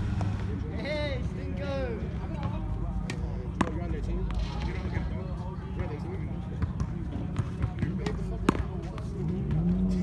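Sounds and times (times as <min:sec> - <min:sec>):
low outdoor rumble: 0:00.0 - 0:05.3
passing vehicle engine hum: 0:09.0 - 0:10.0.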